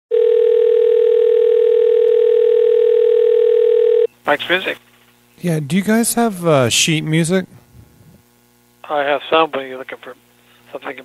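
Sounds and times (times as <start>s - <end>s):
telephone dial tone: 0.1s - 4.1s.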